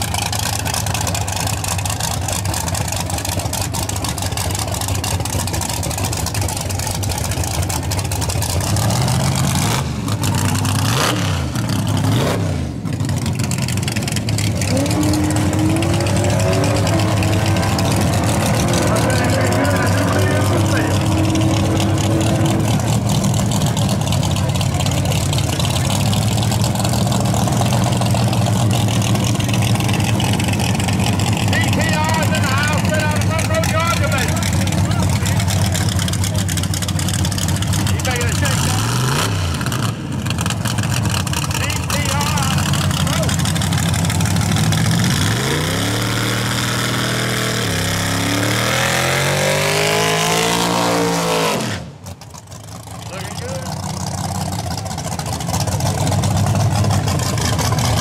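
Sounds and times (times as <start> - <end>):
racing car engine idling and revving: 0.0 - 58.0.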